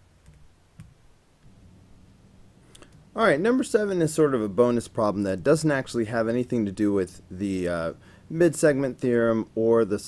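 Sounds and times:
low steady hum: 0.0 - 10.0
faint clicks: 2.7 - 3.0.

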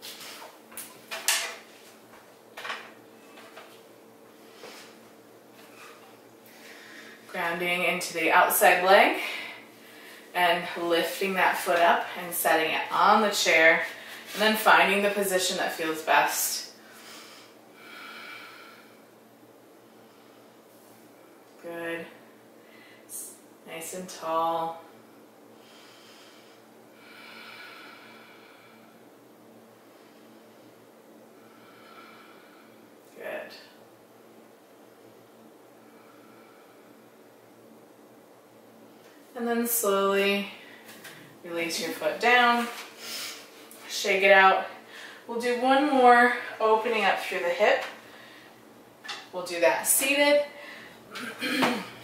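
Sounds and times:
person breathing quietly: 5.7 - 7.3, 25.6 - 29.1, 29.8 - 33.0, 35.8 - 37.2, 44.8 - 45.3.

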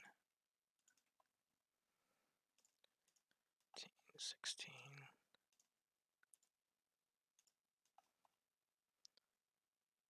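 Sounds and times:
computer mouse clicks: 0.8 - 1.3, 2.6 - 3.4, 5.4 - 6.6, 7.4 - 8.4.

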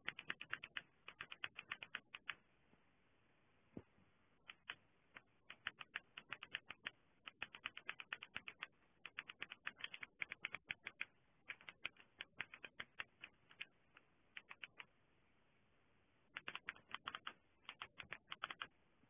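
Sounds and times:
typing on computer keyboard: 0.0 - 2.4, 4.4 - 14.9, 16.3 - 18.7.

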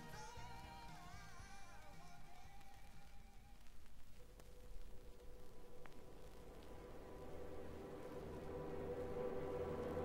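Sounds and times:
soft record clicks: 0.0 - 8.4
record surface noise: 0.0 - 10.0.

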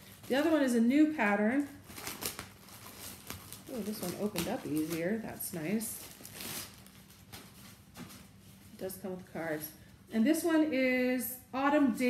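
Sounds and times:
fabric bag rustling: 0.0 - 9.6.

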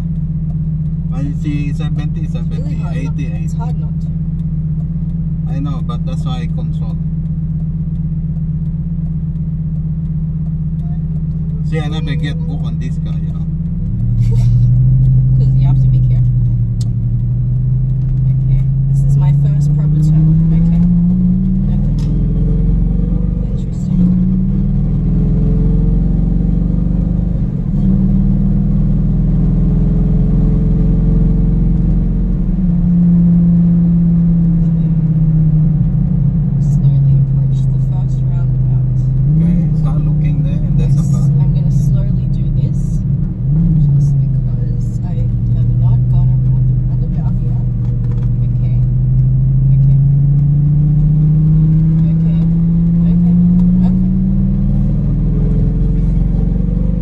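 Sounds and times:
car engine from inside cabin: 0.0 - 57.0.

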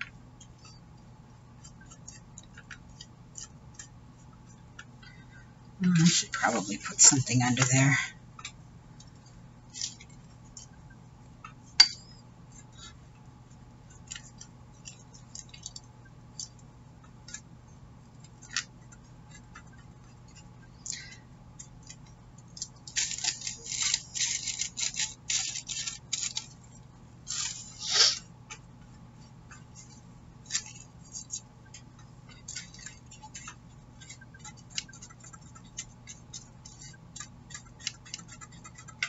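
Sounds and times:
paintbrush scratching on board: 30.6 - 39.0.

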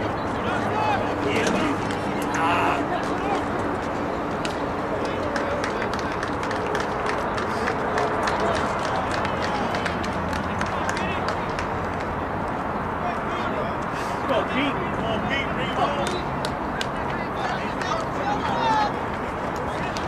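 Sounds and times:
indistinct voices of spectators: 0.0 - 20.0
steady rushing outdoor noise: 0.0 - 20.0.

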